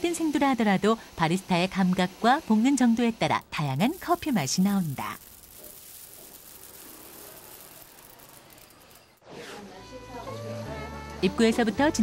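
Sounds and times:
coffee beans pouring: 2.0 - 9.2.

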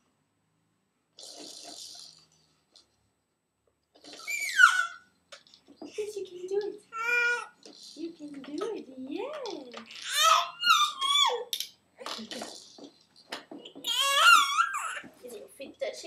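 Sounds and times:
baby squealing and cooing: 4.0 - 5.1, 6.9 - 7.9, 9.8 - 11.5, 13.8 - 15.2.

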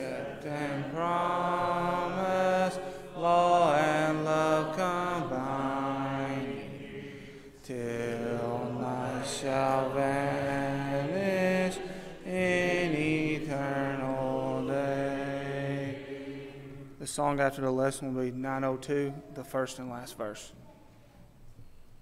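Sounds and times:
congregation singing a hymn: 0.0 - 19.2.

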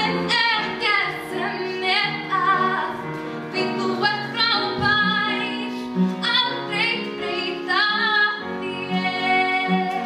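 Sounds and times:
upright piano: 0.0 - 10.0.

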